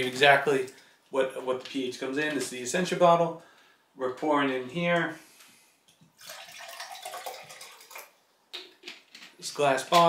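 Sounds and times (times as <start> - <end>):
water pouring into glass: 6.1 - 8.2.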